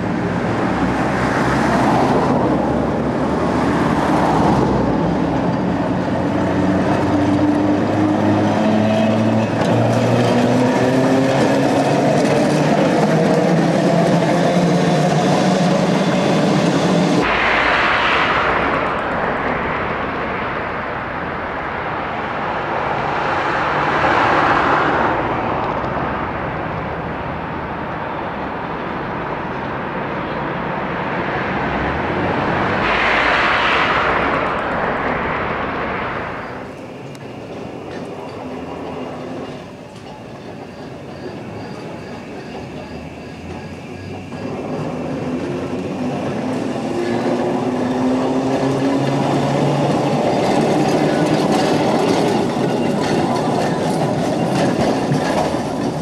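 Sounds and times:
tram rumble: 0:00.0 - 0:56.0
tram whine rising in pitch: 0:00.0 - 0:56.0
trams rolling past: 0:00.0 - 0:56.0.

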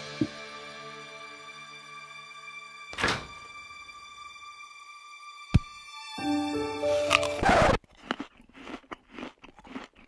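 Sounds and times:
person chewing crunchy food: 0:06.9 - 0:10.0.

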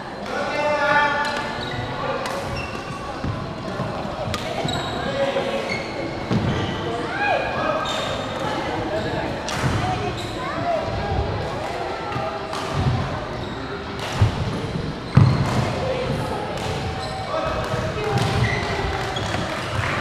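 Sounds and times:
shoe squeak: 0:01.2 - 0:03.1, 0:04.6 - 0:07.0, 0:07.8 - 0:09.3, 0:10.0 - 0:10.7, 0:13.4 - 0:13.8, 0:14.7 - 0:15.6, 0:16.9 - 0:17.5, 0:18.4 - 0:19.9.

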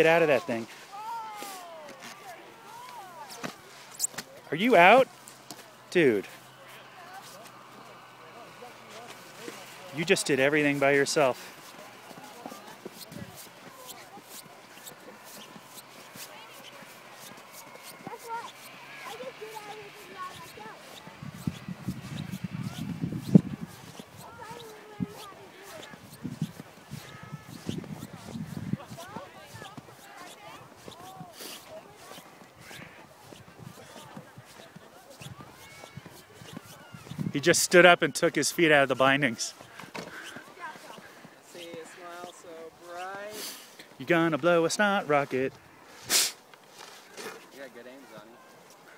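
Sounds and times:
distant voices calling: 0:00.0 - 0:48.9
outdoor background noise: 0:00.0 - 0:48.9.

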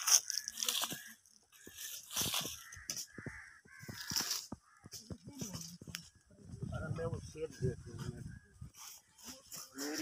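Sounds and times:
crunch on dry soil and leaves: 0:00.0 - 0:10.0.

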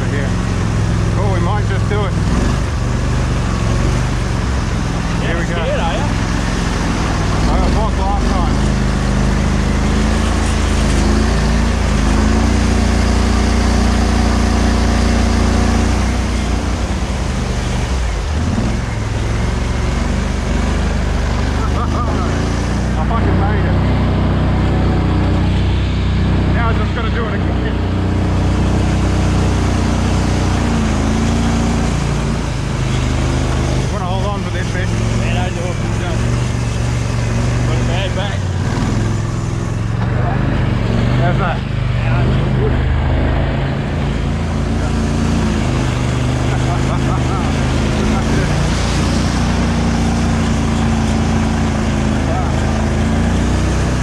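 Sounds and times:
vehicle engine running under load: 0:00.0 - 0:54.0.

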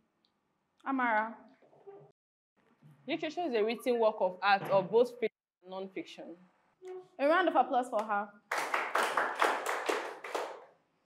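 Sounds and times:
group clapping: 0:08.0 - 0:10.9.

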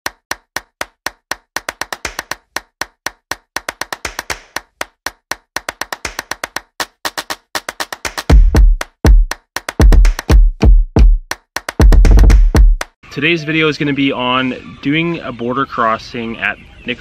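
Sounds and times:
rapid sharp percussive clicks: 0:00.0 - 0:13.0.

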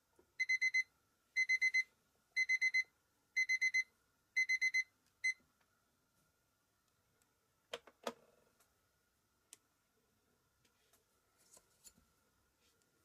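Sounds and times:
kitchen timer beeping: 0:00.4 - 0:05.4.

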